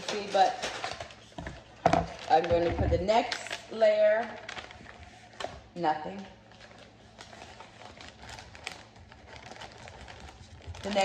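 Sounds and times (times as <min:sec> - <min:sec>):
wrapping paper rustling: 0:00.0 - 0:11.0.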